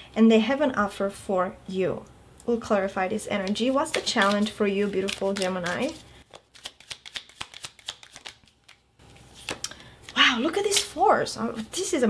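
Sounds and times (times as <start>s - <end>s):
cards being shuffled by hand: 3.3s - 11.8s.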